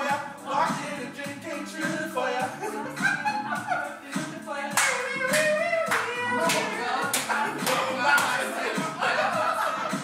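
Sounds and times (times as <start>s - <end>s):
singing over music: 0.0s - 10.0s
rhythmic hand claps: 0.1s - 10.0s.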